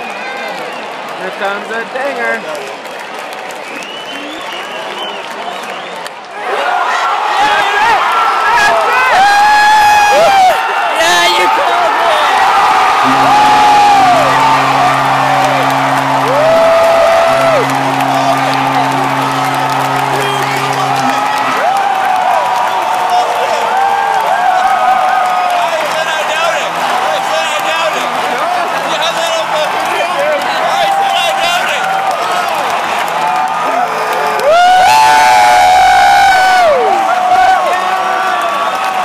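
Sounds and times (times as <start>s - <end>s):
stadium crowd cheering: 0.0s - 39.0s
fans shouting and whooping: 6.3s - 39.0s
low steady tone: 13.0s - 21.6s.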